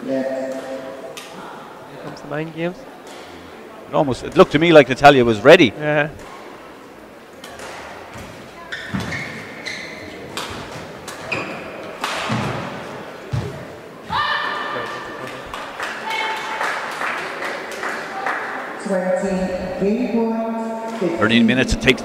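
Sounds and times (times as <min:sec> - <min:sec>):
shoe squeaks on court mat: 0:08.7 - 0:10.2, 0:11.3 - 0:11.7.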